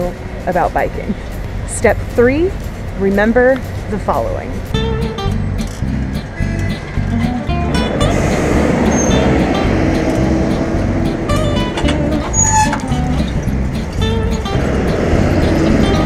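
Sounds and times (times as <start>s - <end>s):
acoustic guitar music: 0.0s - 16.0s
bus running close by: 0.0s - 16.0s
road traffic: 0.0s - 16.0s.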